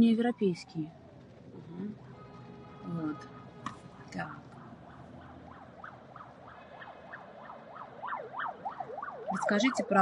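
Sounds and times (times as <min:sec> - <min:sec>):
emergency siren yelping: 0:03.9 - 0:10.0.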